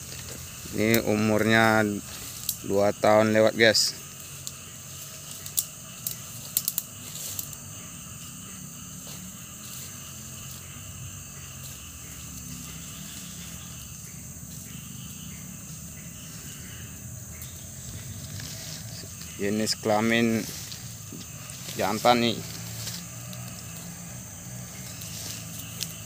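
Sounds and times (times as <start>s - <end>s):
outdoor hiss: 0.0s - 26.0s
sharp clicks and snaps: 5.4s - 7.5s.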